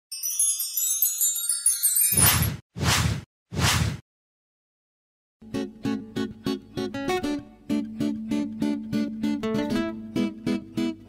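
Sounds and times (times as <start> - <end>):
whoosh sound effects: 2.1 - 4.0.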